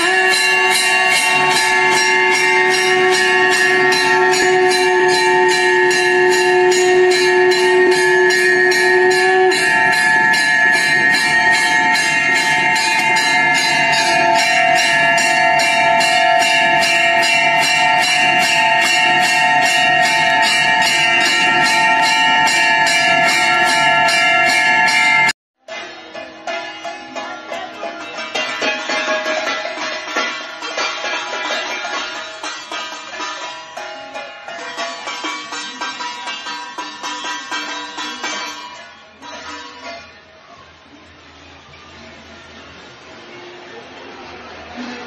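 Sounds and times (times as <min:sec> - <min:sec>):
recorded bells ringing from speaker: 0:00.0 - 0:41.0.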